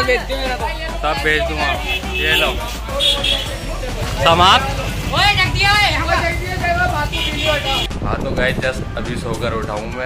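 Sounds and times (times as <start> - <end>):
people talking and calling out: 0.0 - 10.0
low traffic rumble: 0.9 - 9.9.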